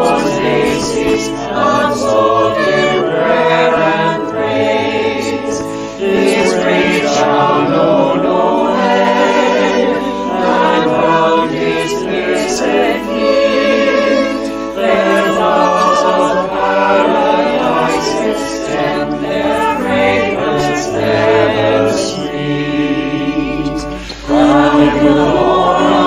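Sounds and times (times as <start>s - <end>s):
choir singing a hymn: 0.0s - 26.0s
organ: 0.0s - 26.0s.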